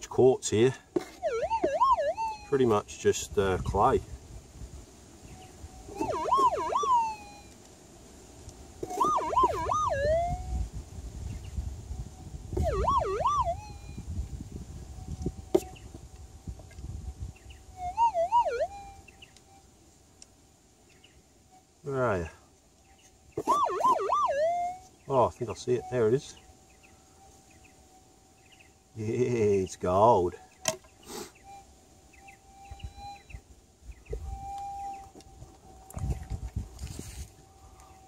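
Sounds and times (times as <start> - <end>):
metal detector threshold tone: 1.0 - 2.8, 5.9 - 7.5, 8.9 - 10.6, 12.6 - 14.0, 17.8 - 19.0, 23.4 - 24.8
warbling detector signal: 1.0 - 2.8, 5.8 - 7.6, 8.8 - 10.7, 12.5 - 14.2, 17.7 - 19.6, 23.4 - 26.4, 31.4 - 33.5, 34.1 - 36.3.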